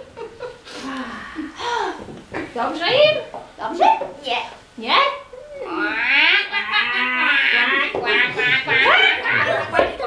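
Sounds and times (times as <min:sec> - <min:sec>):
high voices crying out: 0:05.4 - 0:10.0.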